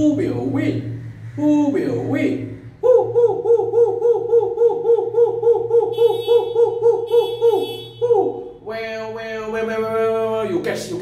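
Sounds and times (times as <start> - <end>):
man hooting: 2.8 - 9.5.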